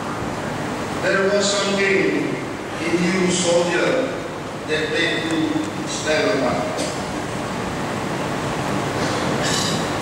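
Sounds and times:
crowded hall room noise: 0:00.0 - 0:10.0.

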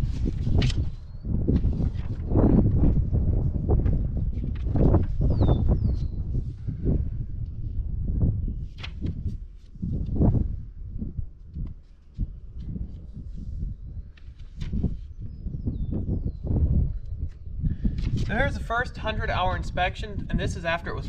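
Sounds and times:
paper pages rustling: 0:00.0 - 0:02.8, 0:04.2 - 0:05.2, 0:08.6 - 0:10.2, 0:14.0 - 0:15.1, 0:17.9 - 0:18.4
wind buffeting microphone: 0:00.0 - 0:21.0.

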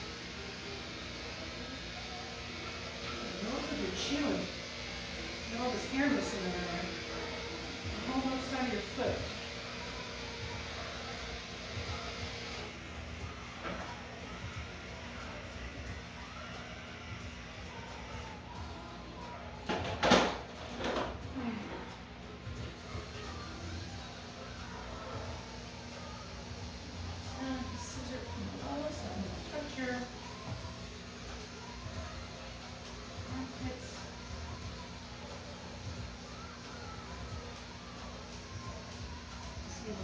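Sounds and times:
electric dog clippers humming: 0:00.0 - 0:15.9, 0:22.5 - 0:40.0.

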